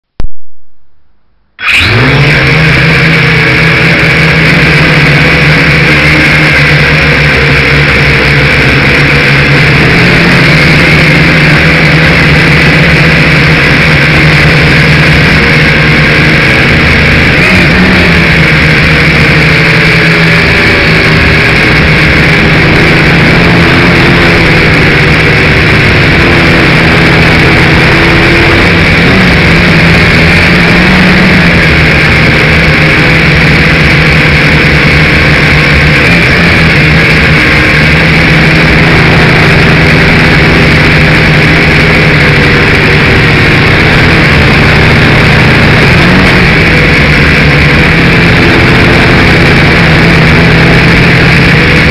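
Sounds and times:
model aircraft motor and propellers: 1.6 - 51.9.

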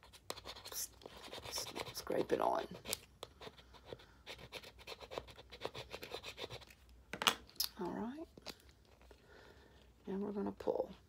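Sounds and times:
scraper scratching on plastic: 0.0 - 6.7.

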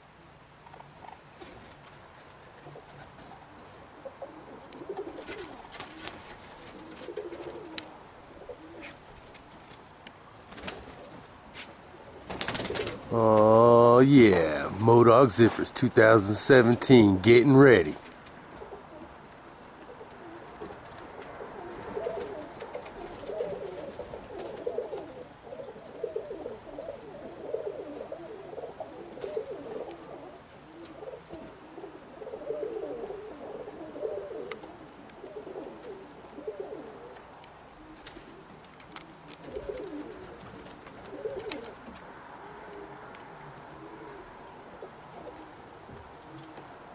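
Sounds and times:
pigeons cooing: 0.7 - 16.2, 17.8 - 46.9.

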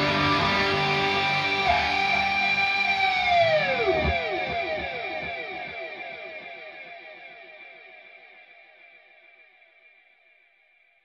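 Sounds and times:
falling echoing guitar repeats: 0.0 - 6.7
electric guitar lead note: 0.0 - 7.2.

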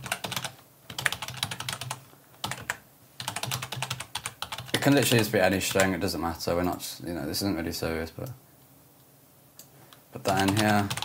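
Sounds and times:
typing on keyboard: 0.0 - 4.8, 10.3 - 11.0.

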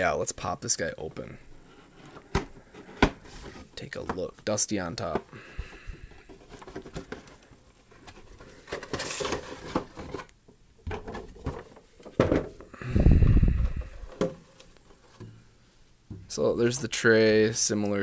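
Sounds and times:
cardboard scraping and rustling: 1.6 - 3.8, 6.2 - 10.3.

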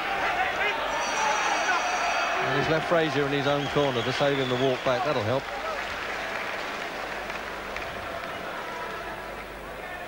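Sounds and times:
crowd clapping: 3.3 - 9.5.

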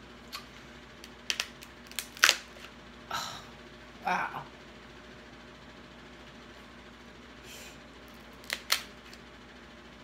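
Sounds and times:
crab shell cracking: 1.0 - 2.5, 8.2 - 9.2.

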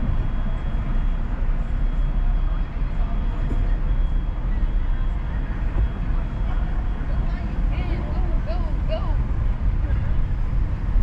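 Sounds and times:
car engine and road rumble: 0.0 - 11.0.

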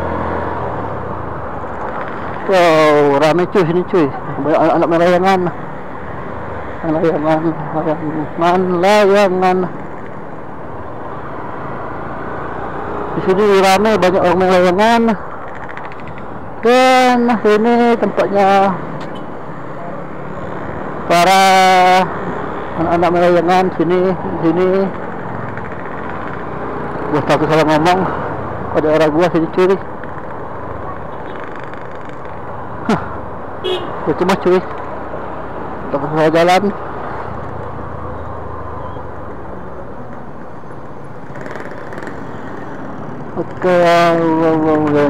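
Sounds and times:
road noise: 0.0 - 45.0.

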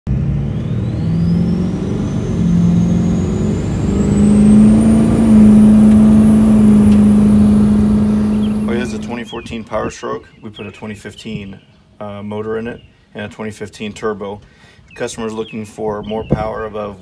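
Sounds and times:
engine revving: 0.1 - 9.4.

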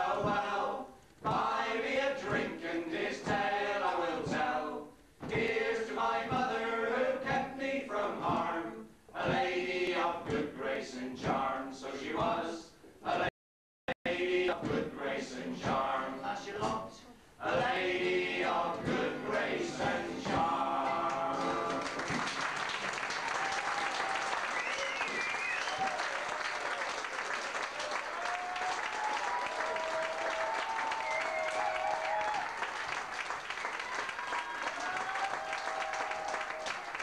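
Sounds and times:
male voices singing together: 0.0 - 13.3, 14.0 - 22.2
audience applauding: 21.4 - 37.0
people cheering: 21.5 - 37.0.

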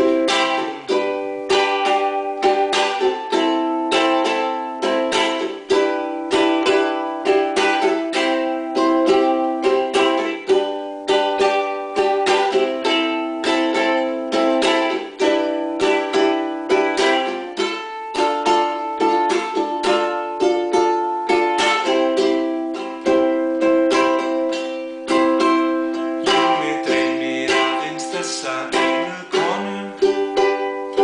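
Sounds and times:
ukulele strumming: 0.0 - 31.0.

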